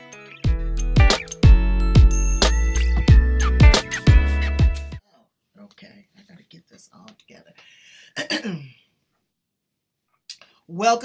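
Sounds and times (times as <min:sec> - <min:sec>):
person clearing throat: 0:08.2 - 0:08.8.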